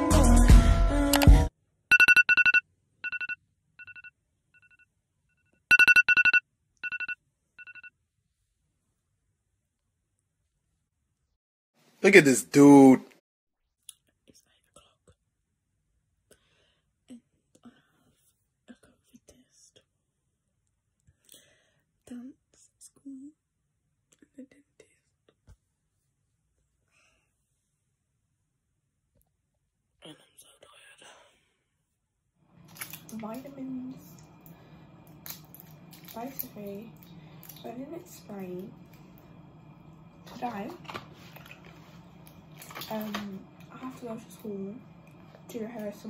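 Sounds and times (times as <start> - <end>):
rapid high pulsed beeps: 1.9 - 4.1, 5.7 - 7.9
person whispering: 30.0 - 31.4.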